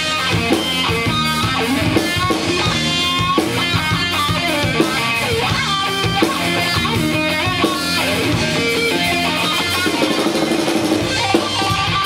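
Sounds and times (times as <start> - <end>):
drum kit: 0.0 - 12.0
electric guitar riffing: 0.0 - 12.0
metal band playing live: 0.0 - 12.0.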